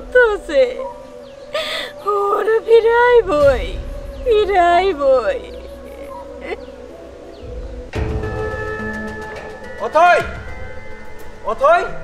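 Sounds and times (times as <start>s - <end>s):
held music tone: 0.0s - 12.0s
woman wailing and weeping: 1.5s - 6.8s.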